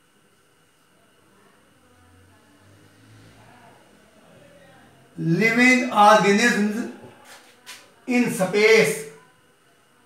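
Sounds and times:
faint high whine: 7.8s - 10.0s.

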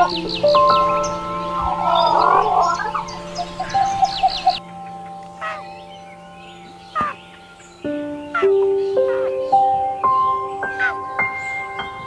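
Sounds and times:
background music with held notes: 0.0s - 12.0s
high bird chirps: 0.0s - 12.0s.

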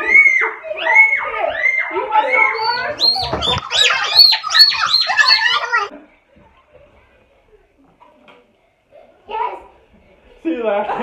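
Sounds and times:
child crying and squealing: 0.0s - 5.9s.

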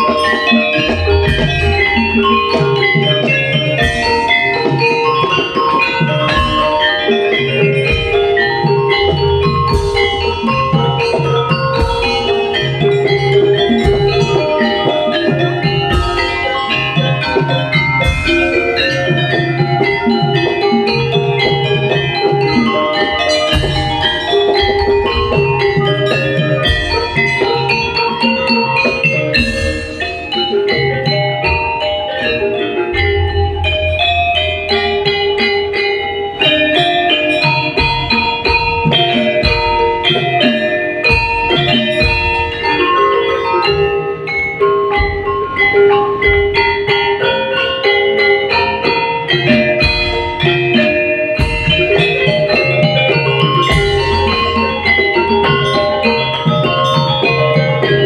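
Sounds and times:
gamelan metallophones ringing: 0.0s - 58.0s.

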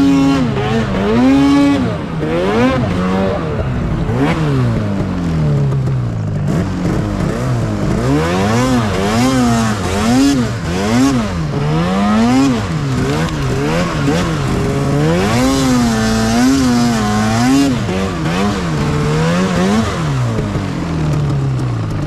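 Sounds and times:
snowmobile engine revving: 0.0s - 22.0s.

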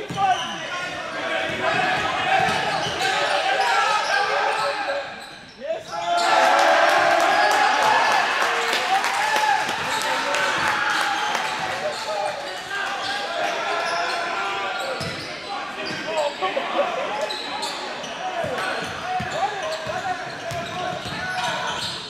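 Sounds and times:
sneakers squeaking: 0.0s - 6.4s, 10.9s - 22.0s.

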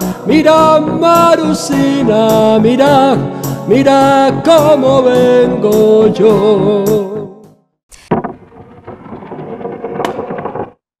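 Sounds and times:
rolling scraping sound: 7.9s - 10.9s.

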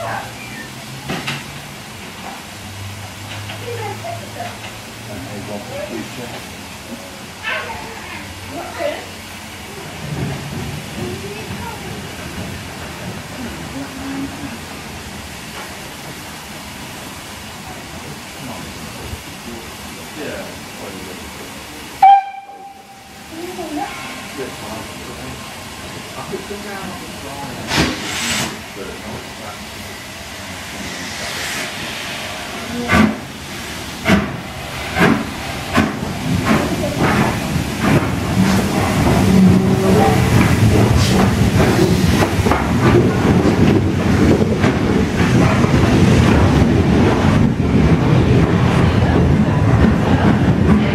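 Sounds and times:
steam locomotive wheels clattering: 0.1s - 16.2s, 20.2s - 50.9s
steam locomotive whistle: 22.0s - 23.2s.

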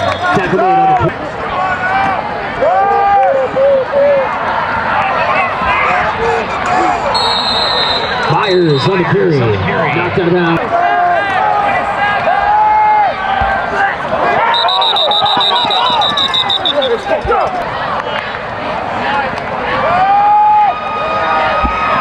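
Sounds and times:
stadium crowd shouting: 0.0s - 22.0s
referee's whistle trilling: 7.1s - 9.1s, 14.4s - 17.3s.

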